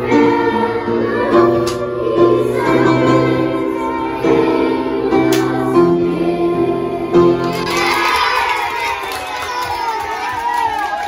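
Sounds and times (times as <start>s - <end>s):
children cheering and shouting: 7.4s - 11.0s
hand clapping: 7.4s - 11.0s.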